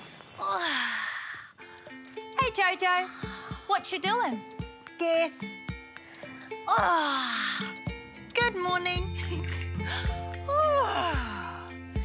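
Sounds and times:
light background music: 0.2 - 12.0.

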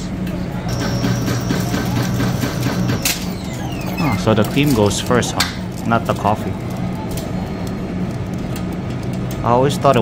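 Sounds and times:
coffee machine humming: 0.1 - 10.0.

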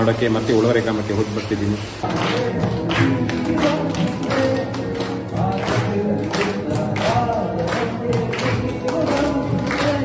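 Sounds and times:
rhythmic clapping: 1.4 - 10.0.

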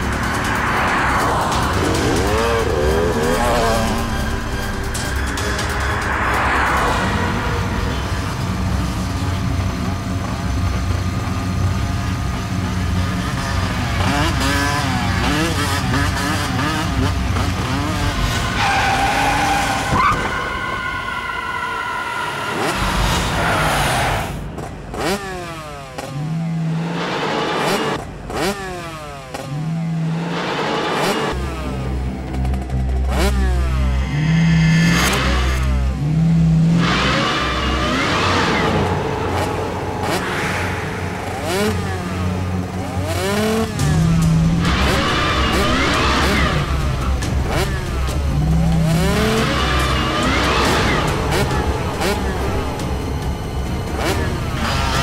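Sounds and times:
motorcycle engine revving: 0.0 - 19.9, 24.6 - 55.0.

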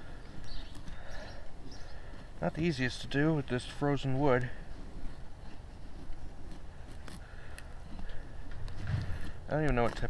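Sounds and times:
knife scraping wood: 5.2 - 10.0.

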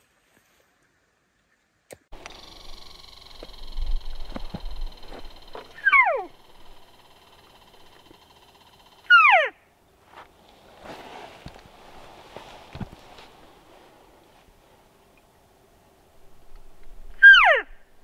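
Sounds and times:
elk mews: 5.7 - 6.4.

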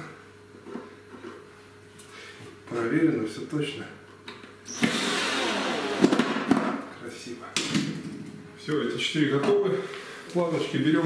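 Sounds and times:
cordless drill driving screw: 4.7 - 6.2.

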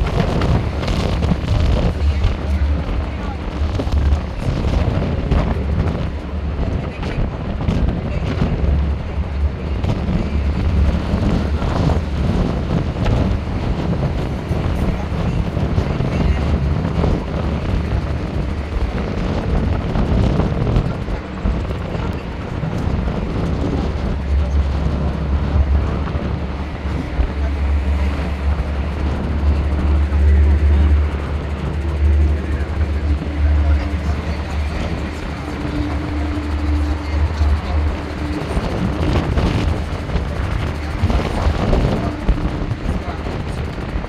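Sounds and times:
bus rumble: 0.0 - 44.0
passing traffic: 0.0 - 44.0
wind buffeting microphone: 0.0 - 44.0.

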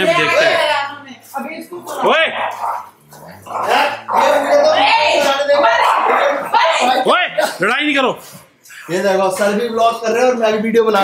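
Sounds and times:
dogs growling: 1.8 - 6.6
dog barking: 2.0 - 2.9, 5.6 - 6.5.

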